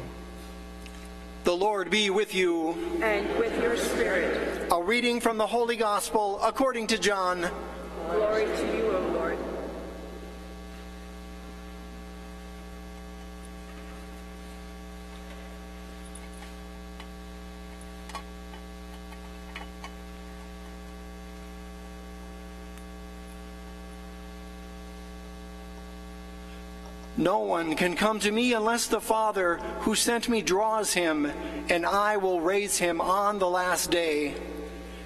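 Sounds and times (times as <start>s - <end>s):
electrical mains hum: 0.0s - 35.0s.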